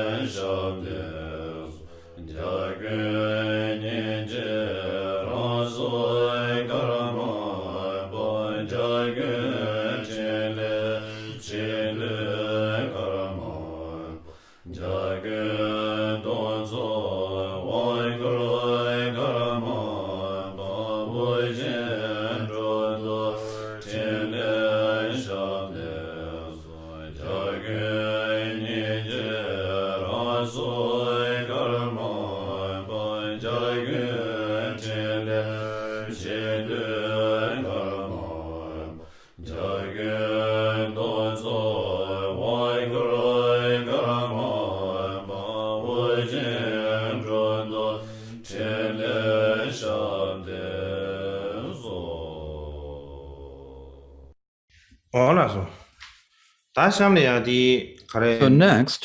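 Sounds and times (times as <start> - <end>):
many voices chanting in unison: 0.0 - 54.3.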